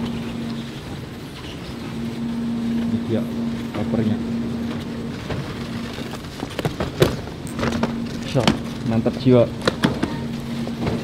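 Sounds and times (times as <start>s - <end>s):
baggage carousel belt humming: 0.0s - 11.0s.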